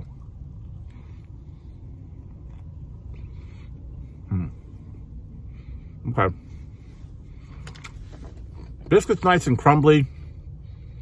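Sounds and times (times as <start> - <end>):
man chewing food: 0.0 - 5.2
steady low rumble: 0.0 - 11.0
man humming mm: 4.2 - 4.7.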